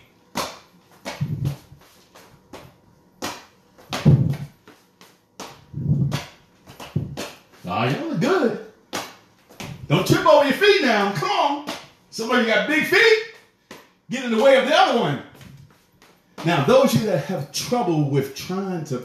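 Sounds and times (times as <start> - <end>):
footsteps on a floor: 0.0 - 8.0, 9.0 - 10.1, 15.3 - 17.3.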